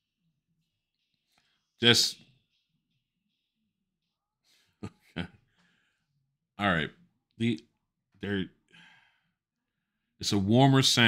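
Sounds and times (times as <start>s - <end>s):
man speaking: 1.8s - 2.3s, 6.6s - 8.6s, 10.2s - 11.0s.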